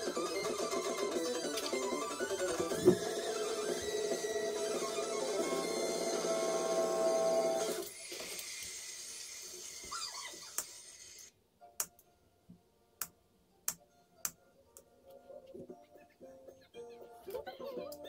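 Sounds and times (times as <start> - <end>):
background music: 0.0 - 7.8, 11.6 - 18.0.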